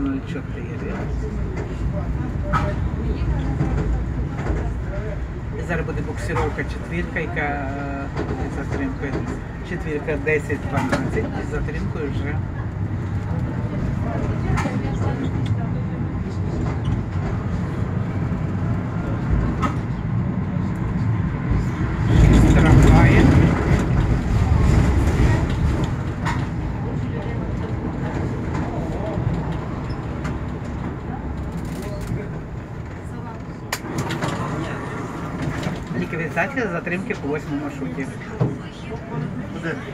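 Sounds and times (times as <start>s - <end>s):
tram motor and wheels rumbling: 0.0s - 39.9s.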